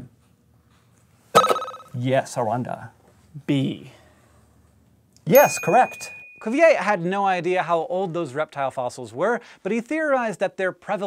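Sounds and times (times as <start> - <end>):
quiz-show ring-in bell: 5.3 - 6.5.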